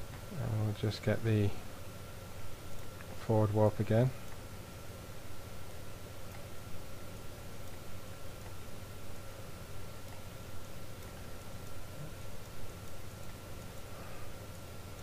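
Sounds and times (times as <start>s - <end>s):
faint high whine: 0.0s - 15.0s.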